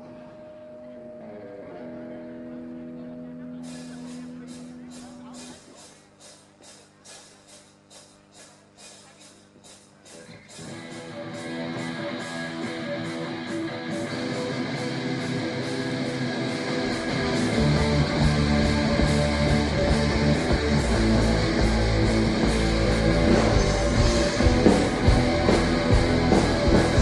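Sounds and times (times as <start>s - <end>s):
electric guitars: 0.0s - 5.9s, 10.1s - 27.0s
bass and drums: 3.6s - 27.0s.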